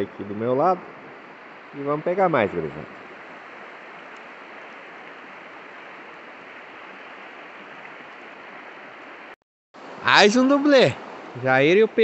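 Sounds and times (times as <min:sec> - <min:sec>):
river water rushing: 0:00.1 - 0:12.0.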